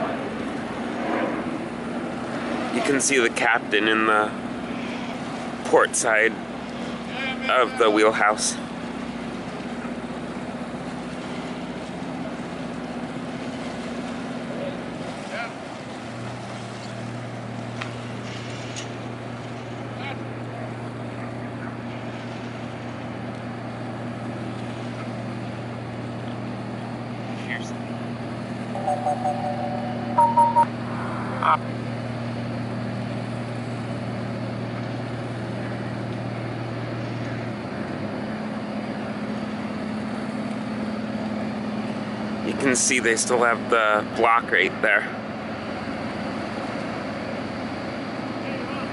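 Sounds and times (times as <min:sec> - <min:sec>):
deeper engine tone: 0:00.0 - 0:09.9, 0:28.1 - 0:35.2
boat diesel engine humming: 0:00.0 - 0:48.9
short high-pitched sounds: 0:28.8 - 0:30.9.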